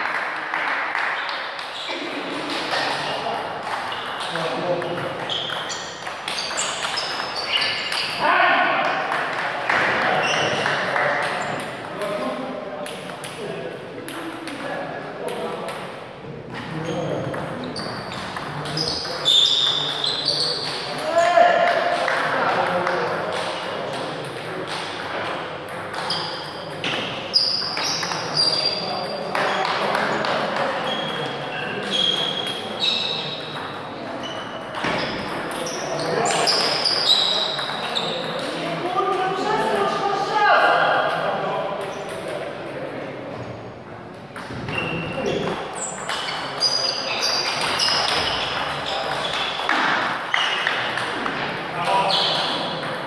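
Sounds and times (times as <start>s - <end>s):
ball bouncing on table: 2.5s - 8.2s, 21.6s - 28.6s, 33.4s - 38.4s
ping pong ball clicking off paddles: 2.5s - 8.2s, 17.2s - 21.0s, 21.6s - 33.8s, 34.4s - 38.5s.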